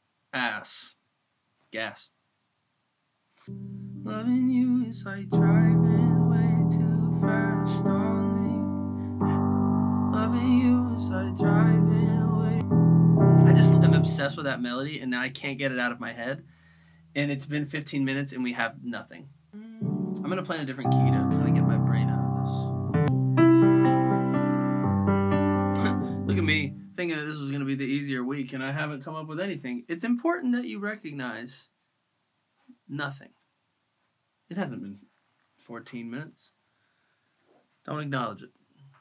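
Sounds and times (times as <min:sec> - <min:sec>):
sustained keyboard chords: 0:03.5 - 0:14.4, 0:19.6 - 0:27.0
faint voice: 0:25.8 - 0:26.6.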